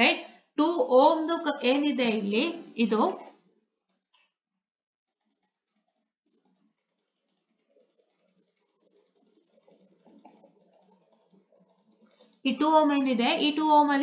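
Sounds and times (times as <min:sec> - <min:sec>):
fast faint clicking: 0:03.9 - 0:04.3, 0:05.1 - 0:12.5.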